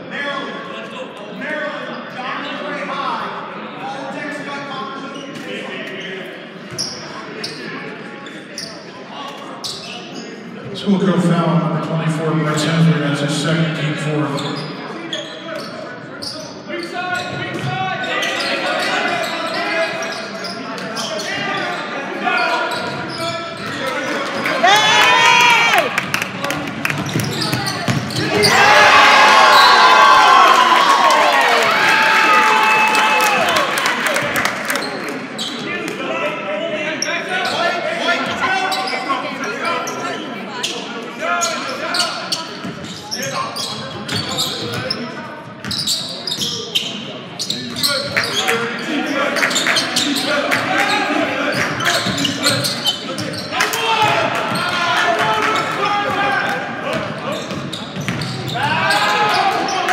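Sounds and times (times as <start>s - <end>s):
sneakers squeaking: 6.7s - 8.9s, 9.6s - 10.5s, 14.3s - 23.9s, 26.9s - 28.6s, 37.4s - 53.6s, 57.0s - 59.6s
basketball bouncing on court: 26.9s - 28.2s, 57.0s - 58.4s.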